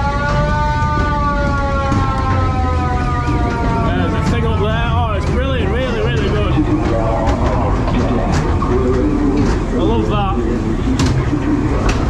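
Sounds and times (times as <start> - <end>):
eerie wavering soundtrack: 0.0 - 12.0
ride car rumbling on track: 0.0 - 12.0.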